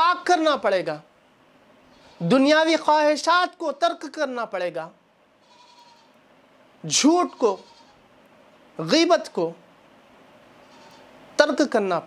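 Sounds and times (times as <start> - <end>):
man speaking: 0.0 - 1.1, 2.2 - 5.0, 6.8 - 7.6, 11.4 - 12.0
faint room tone hiss: 0.0 - 12.0.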